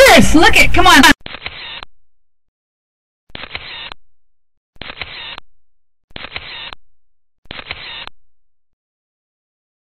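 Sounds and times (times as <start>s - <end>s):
camera shutter clicks: 1.2s - 1.9s, 3.3s - 4.0s, 4.8s - 5.4s, 6.1s - 6.8s, 7.5s - 8.1s.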